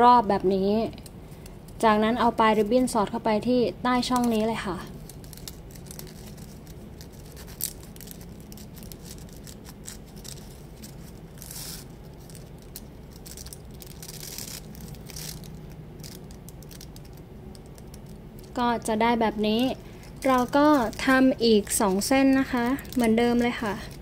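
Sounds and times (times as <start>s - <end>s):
low steady hum: 0.0s - 24.0s
plastic ribbon crinkling: 3.9s - 24.0s.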